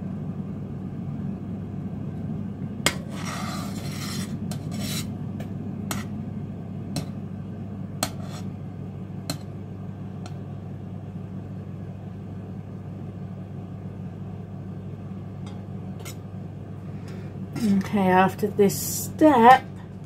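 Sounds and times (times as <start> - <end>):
steady low hum: 0.0 - 20.0
spoon scraping pan: 2.9 - 5.1, 5.9 - 6.1, 8.0 - 8.5.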